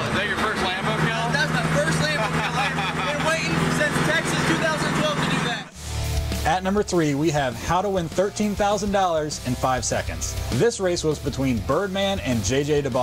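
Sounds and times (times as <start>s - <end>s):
crowd talking and shouting: 0.0s - 5.8s
car engine idling: 0.0s - 6.2s.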